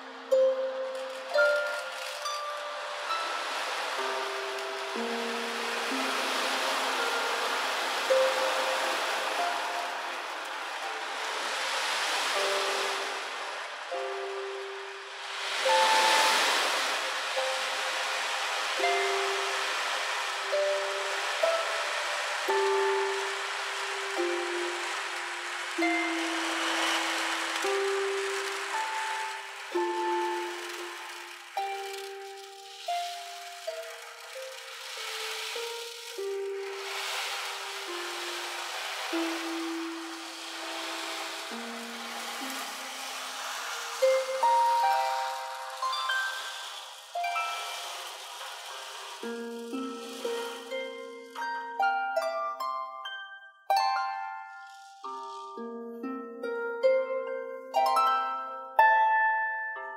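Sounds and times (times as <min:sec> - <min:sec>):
ocean drum beads rolling: 0:00.0 - 0:58.8
harp notes plucked: 0:00.0 - 0:59.9.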